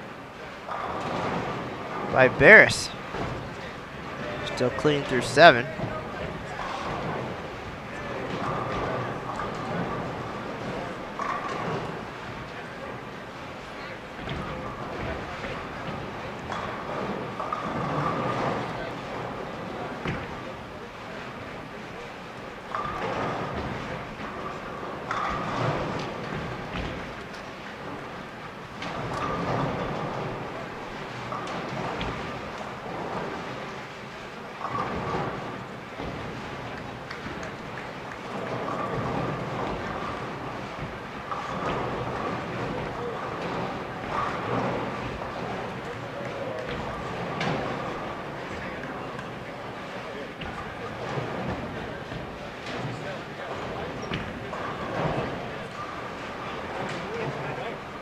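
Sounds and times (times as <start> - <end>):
bowling balls rolling: 0.0 - 58.0
people chattering: 2.1 - 3.0, 4.2 - 5.9.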